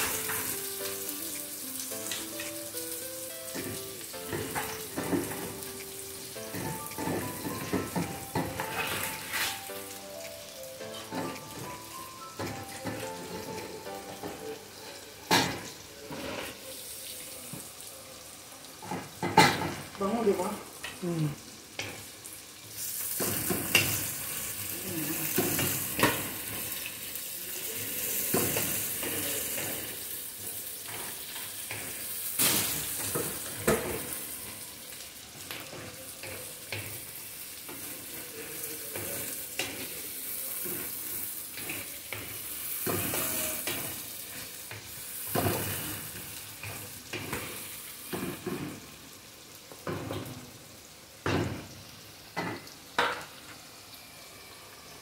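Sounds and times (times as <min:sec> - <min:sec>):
onions sizzling in hot oil: 0:00.0 - 0:55.0
wooden spatula scraping a pan: 0:08.5 - 0:09.7.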